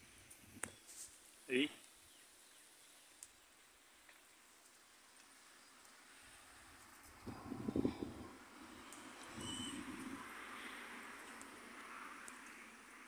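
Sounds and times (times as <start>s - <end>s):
rural outdoor ambience: 0.0s - 13.0s
high bird chirp: 8.8s - 9.9s.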